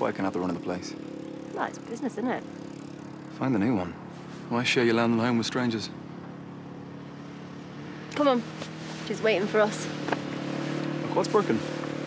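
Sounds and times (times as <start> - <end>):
quad bike engine running: 0.0 - 12.0.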